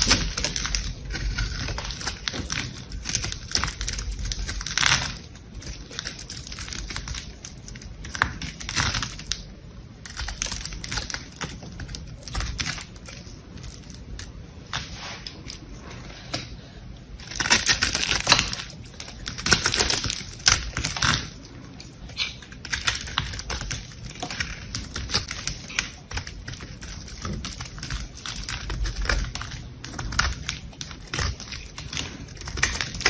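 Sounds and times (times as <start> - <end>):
knife cutting crumbly soap: 0.0 - 16.3, 17.2 - 33.0.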